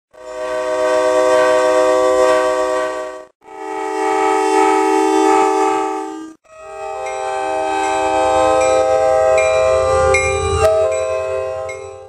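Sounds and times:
locomotive air horn chord: 0.1 - 12.0.

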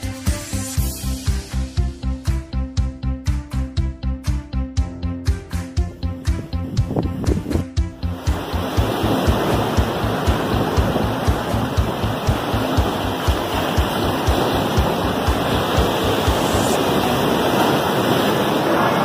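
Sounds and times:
music with fast low beat: 0.0 - 17.1
waves breaking on rocks: 8.2 - 19.0.

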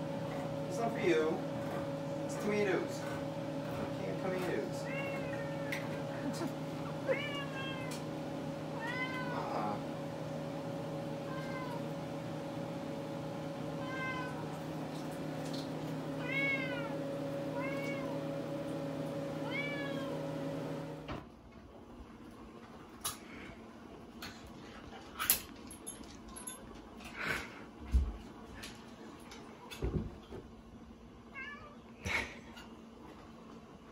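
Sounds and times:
cat meowing: 4.8 - 5.9, 7.0 - 8.0, 8.8 - 9.8, 11.2 - 11.9, 13.8 - 14.5, 16.2 - 18.3, 19.4 - 20.2, 31.3 - 31.8.

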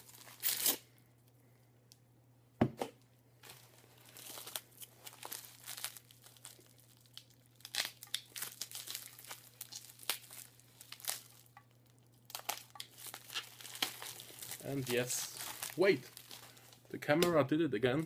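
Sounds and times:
packing material crinkling and tearing: 0.0 - 1.0, 3.4 - 18.0.

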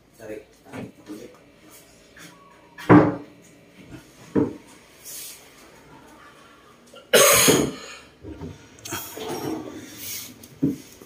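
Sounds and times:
person coughing: 7.0 - 8.1.

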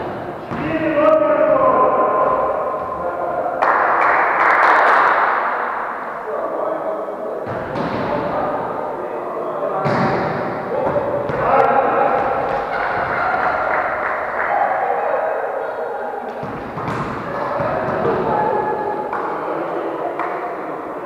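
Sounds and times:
players calling and shouting: 0.0 - 21.0.

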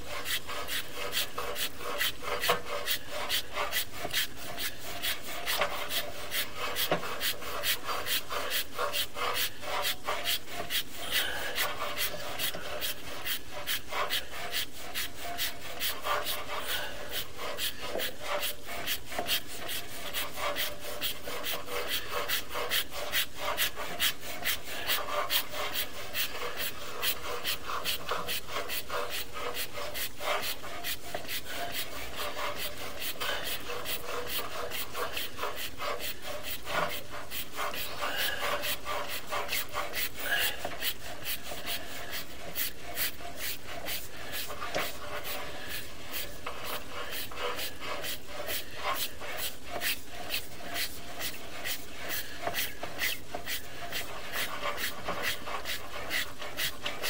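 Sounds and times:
camera cable scraping in pipe: 0.0 - 57.0.

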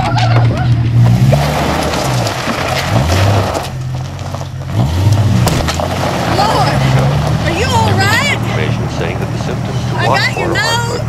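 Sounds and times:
car engine hum inside cabin: 0.0 - 11.0.

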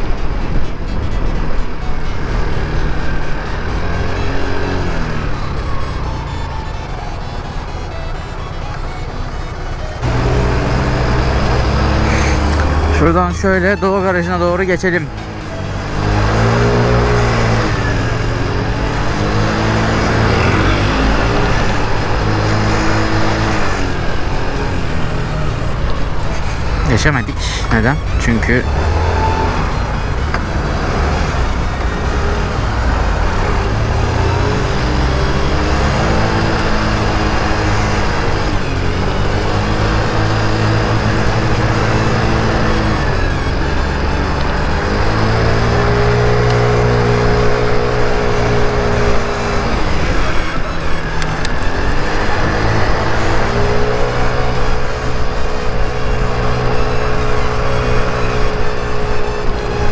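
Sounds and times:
scooter engine accelerating: 0.1 - 59.9.

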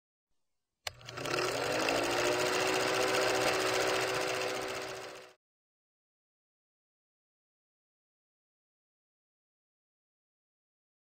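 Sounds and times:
film projector motor clattering: 0.9 - 5.4.

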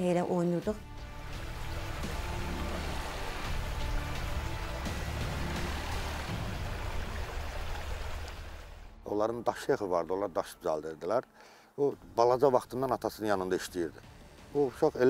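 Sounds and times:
music with sustained low notes: 0.0 - 10.8
stream rushing over rocks: 1.0 - 9.0.

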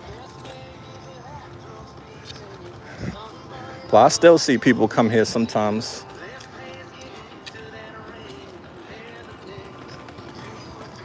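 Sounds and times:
footsteps on brick paving: 0.0 - 11.0
wagon wheels rattling: 0.0 - 11.0.

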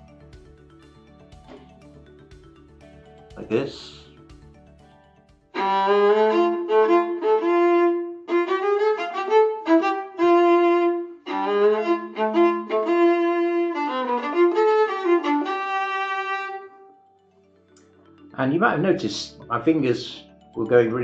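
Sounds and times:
bowed viola playing jazzy tune: 5.5 - 16.9.

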